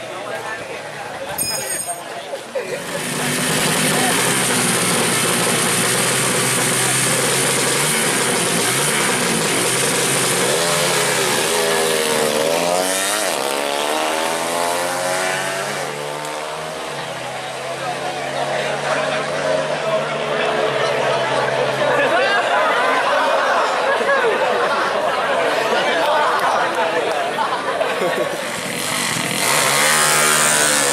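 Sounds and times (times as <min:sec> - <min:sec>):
motorcycle engine revving hard: 0:02.7 - 0:21.8, 0:28.3 - 0:30.9.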